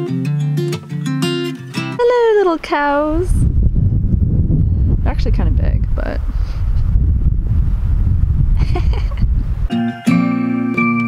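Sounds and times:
wind buffeting microphone: 2.0 - 9.7.

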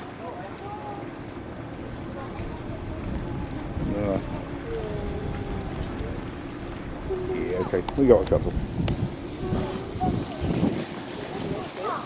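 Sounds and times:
wind rumbling on microphone: 1.0 - 12.0.

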